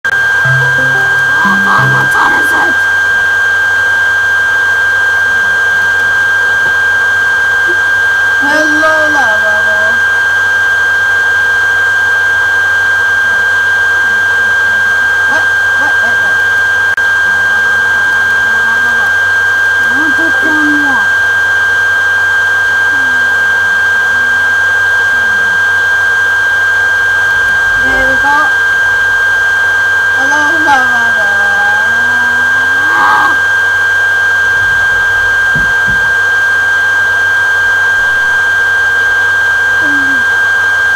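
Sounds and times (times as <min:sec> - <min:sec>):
high-pitched whine: 0:00.0 - 0:40.9
incoming call ringtone: 0:00.1 - 0:02.8
high-pitched tone and hiss: 0:00.1 - 0:06.8, 0:17.1 - 0:36.4
faint voice: 0:00.5 - 0:02.9, 0:19.8 - 0:21.2, 0:22.8 - 0:25.7, 0:27.7 - 0:28.6, 0:30.2 - 0:33.4, 0:39.8 - 0:40.4.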